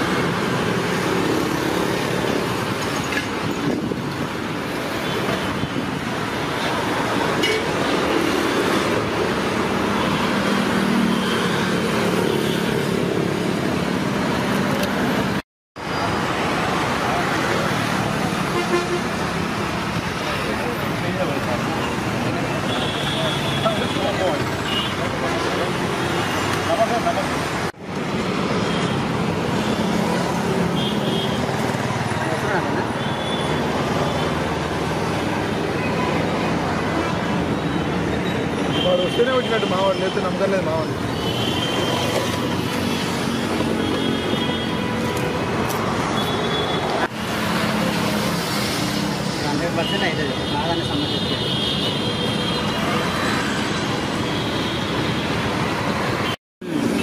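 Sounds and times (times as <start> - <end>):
passing cars and motorbikes: 0.0 - 57.0.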